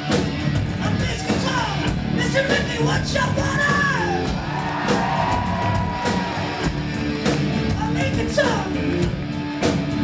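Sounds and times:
hard rock band playing: 0.0 - 10.0.

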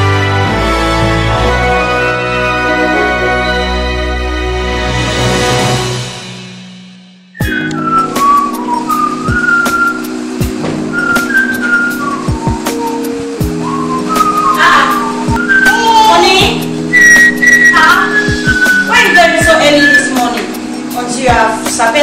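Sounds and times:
whistle-like lead melody: 7.3 - 20.8.

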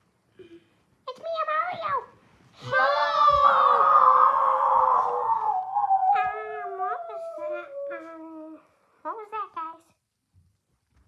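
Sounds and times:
child wailing cry: 2.6 - 8.3
child yelping: 2.6 - 8.4.

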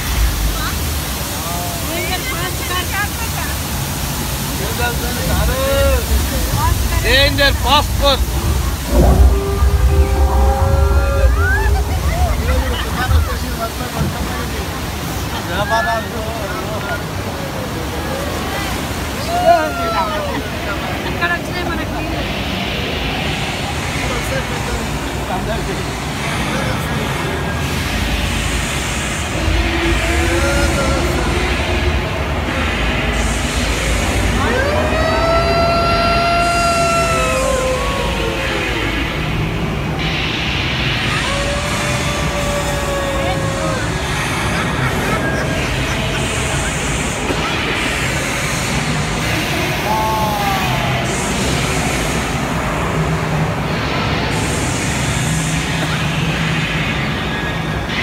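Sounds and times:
ride rumbling: 0.0 - 58.0.

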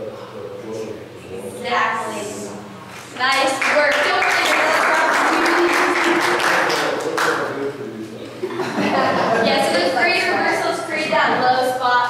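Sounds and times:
voices talking: 0.0 - 12.0
people applauding: 3.2 - 7.6.

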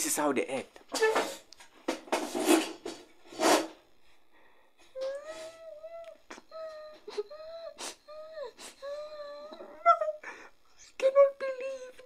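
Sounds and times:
sobbing gasp of breath: 6.4 - 10.6.

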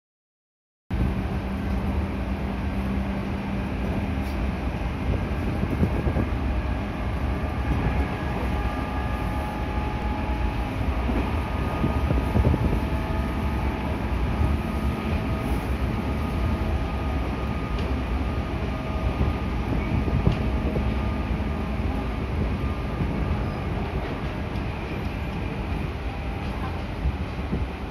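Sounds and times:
electric train running rumble: 0.9 - 27.9.

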